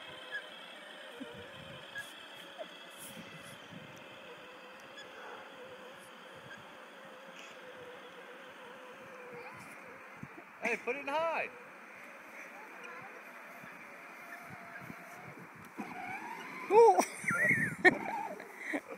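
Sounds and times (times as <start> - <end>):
toy electric motor whining: 0.0 - 18.9
faint clicks: 3.6 - 5.2.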